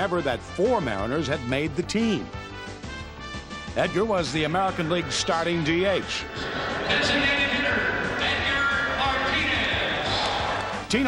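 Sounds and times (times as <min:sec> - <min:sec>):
background music: 0:00.0 - 0:11.0
voices: 0:06.3 - 0:10.7
stadium crowd noise: 0:06.3 - 0:11.0
man laughing: 0:06.4 - 0:08.1.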